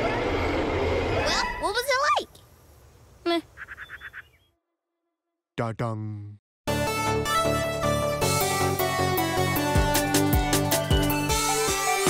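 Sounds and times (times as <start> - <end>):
squeaky chirps: 3.4 - 4.6.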